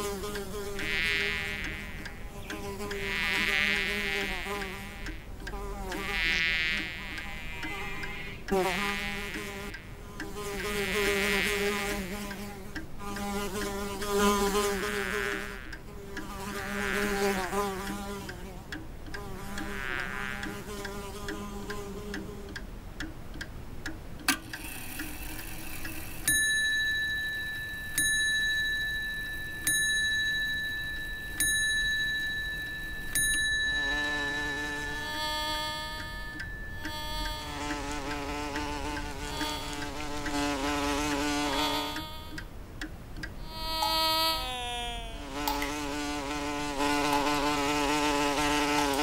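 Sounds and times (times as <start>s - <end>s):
fly buzzing: 0.0s - 22.6s, 33.7s - 42.5s, 43.4s - 49.0s
high ringing ding: 26.3s - 37.7s.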